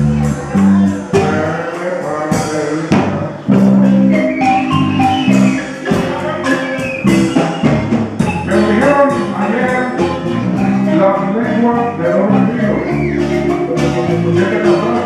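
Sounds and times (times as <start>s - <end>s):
marimba melody: 0.0s - 2.5s, 3.4s - 15.0s
low accompaniment: 0.0s - 15.0s.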